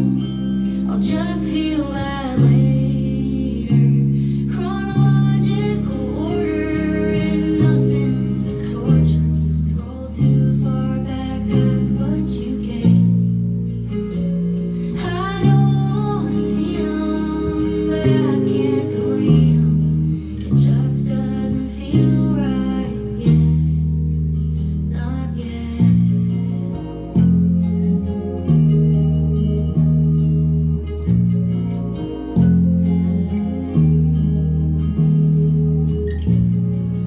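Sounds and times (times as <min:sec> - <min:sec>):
country-pop recording: 0:00.0 - 0:37.0
deep electric bass notes: 0:00.0 - 0:37.0
gliding high melodic line: 0:00.0 - 0:37.0
plucked guitar: 0:00.0 - 0:37.0.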